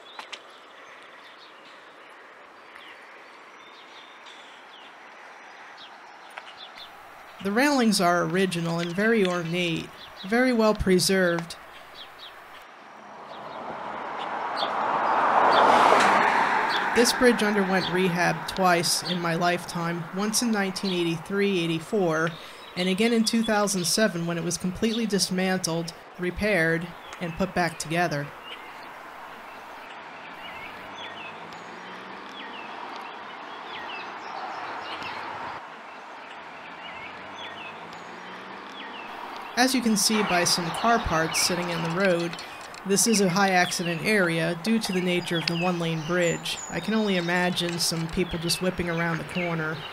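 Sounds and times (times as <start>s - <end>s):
car driving past on asphalt: 12.6s - 20.1s, 28.4s - 42.9s.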